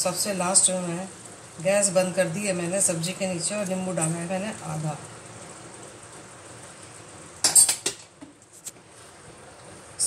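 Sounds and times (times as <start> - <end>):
utensils clattering against a pan: 7.4 - 8.1.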